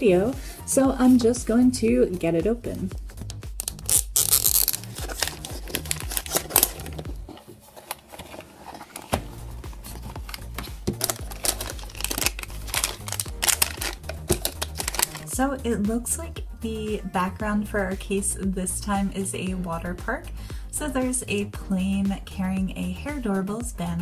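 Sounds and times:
background music: 0.0 - 24.0
plastic wrapping crinkling and tearing: 3.2 - 15.3
plastic case clicks and knocks: 10.0 - 15.2.

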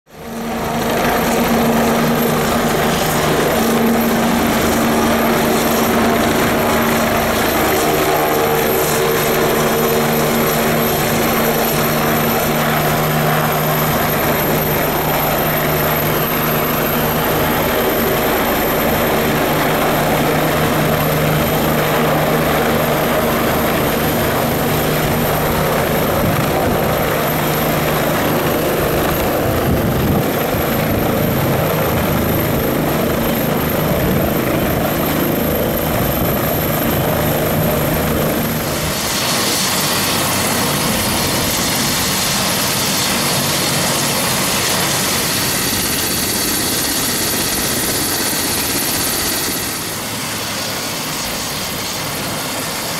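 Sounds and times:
helicopter rotor and turbine noise: 0.1 - 52.9.

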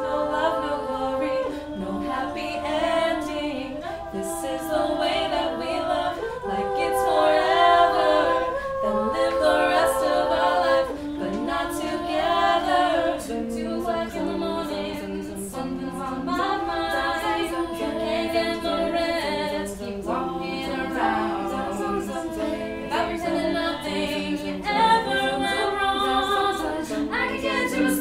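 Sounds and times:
women singing a cappella harmony: 0.0 - 28.0.

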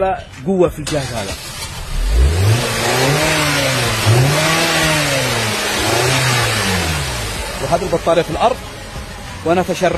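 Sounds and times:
car engine revving: 0.8 - 8.6.

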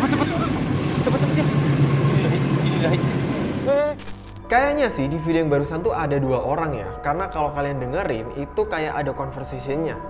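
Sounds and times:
people talking: 0.0 - 3.1
car engine and road noise: 0.0 - 4.4
rising glitch sound effect: 1.3 - 4.4.

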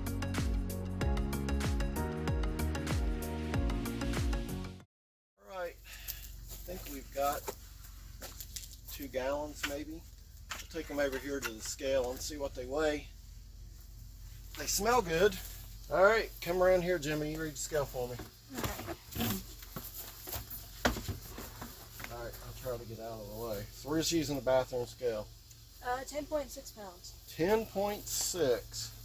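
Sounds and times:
steady low hum: 5.5 - 29.0.

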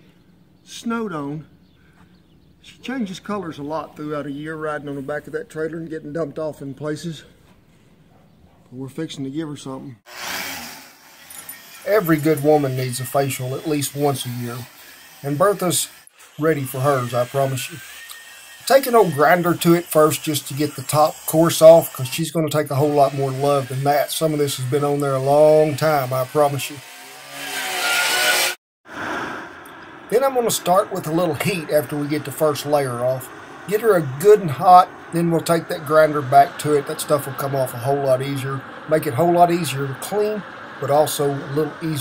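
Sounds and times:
angle grinder sanding steel: 10.1 - 28.6, 30.1 - 42.0
rushing noise: 28.9 - 42.0.

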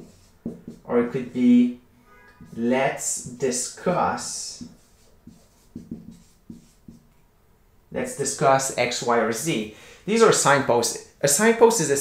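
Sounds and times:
marker squeaking on whiteboard: 0.0 - 1.5, 2.2 - 7.1.

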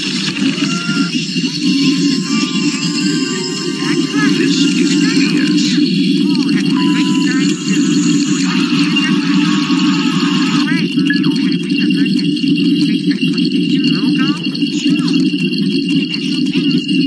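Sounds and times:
warbling voice-like pitch glides: 0.0 - 16.9
steady low drone: 0.0 - 17.0.

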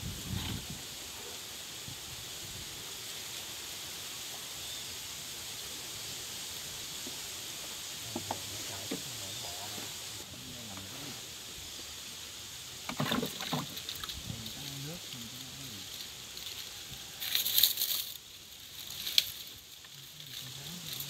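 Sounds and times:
palm fronds rustling: 0.0 - 21.0
steady high hiss: 0.0 - 21.0.

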